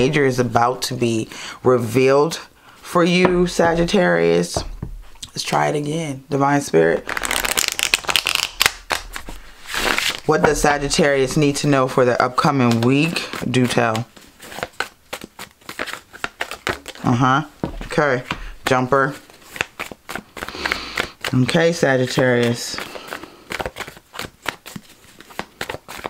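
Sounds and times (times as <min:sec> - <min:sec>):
cards riffle-shuffled: 0:07.0 - 0:17.2, 0:17.8 - 0:26.0.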